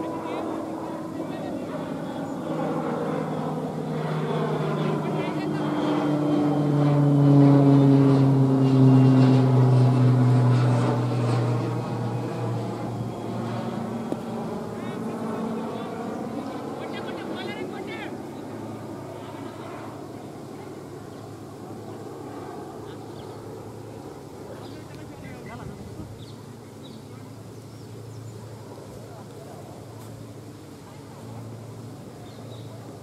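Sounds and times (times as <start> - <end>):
aircraft engine drone: 0.0 - 33.0.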